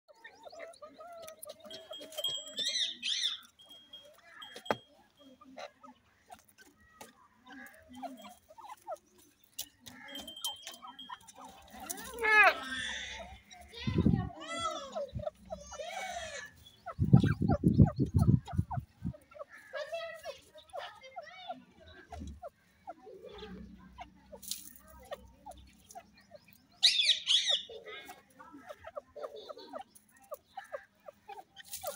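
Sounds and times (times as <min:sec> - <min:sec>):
francolin calling: 0:00.1 - 0:06.9, 0:14.5 - 0:27.8
animal sharp high calls: 0:11.9 - 0:13.5, 0:14.5 - 0:18.8.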